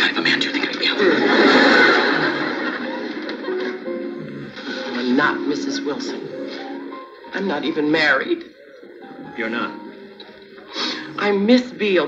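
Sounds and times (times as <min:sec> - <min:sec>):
television background music: 0:00.0 - 0:12.0.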